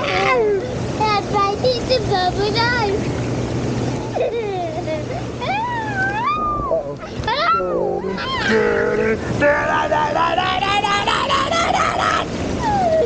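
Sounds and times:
hot tub jets churning water: 0.0 - 13.0
child giggling: 4.1 - 7.5, 10.9 - 13.0
child squealing: 5.4 - 8.6
lower voice: 5.4 - 13.0.

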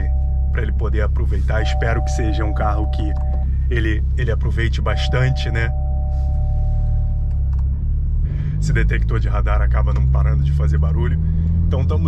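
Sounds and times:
in-cabin engine rumble: 0.0 - 12.0
tyres on road: 0.0 - 12.0
two-note alert tone: 4.9 - 7.2.

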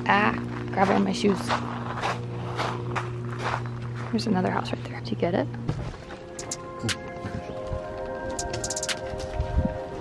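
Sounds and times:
footsteps on gravel: 0.2 - 4.9.

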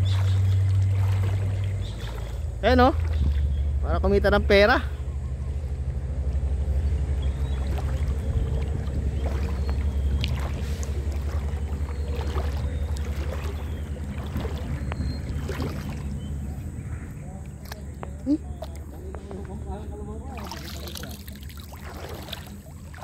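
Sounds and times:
low rumble: 0.0 - 20.7
water sloshing and splashing: 0.0 - 23.0.

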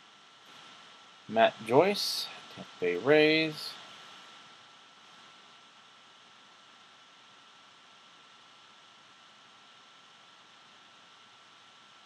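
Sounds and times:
faint room tone hiss: 0.0 - 12.0
high-pitched whine: 0.5 - 5.4.

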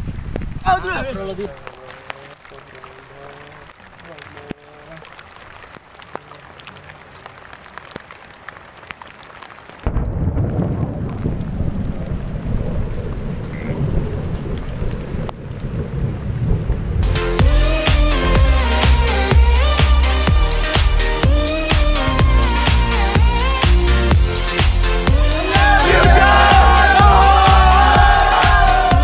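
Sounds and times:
rain: 0.0 - 29.0
light ticks and rustling: 0.1 - 9.6
thunder rumbling: 9.8 - 17.1.

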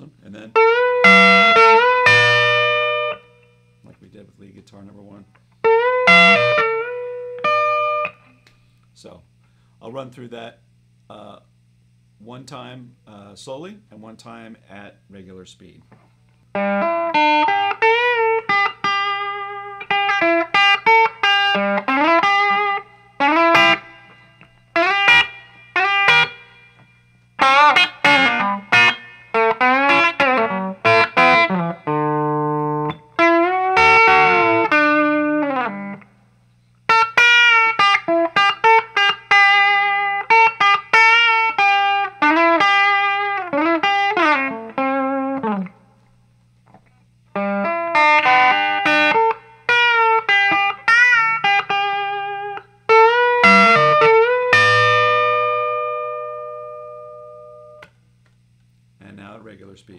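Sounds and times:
electric guitar lead line: 0.0 - 3.9, 5.6 - 8.4, 16.5 - 36.2, 36.9 - 46.0, 46.6 - 57.9.

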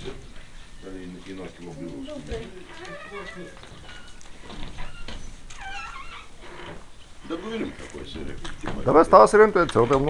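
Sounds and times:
faint voices: 0.0 - 4.8.

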